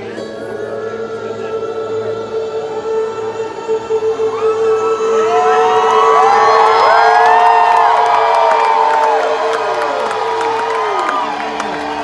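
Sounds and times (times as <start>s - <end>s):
crowd singing along: 0.0s - 12.0s.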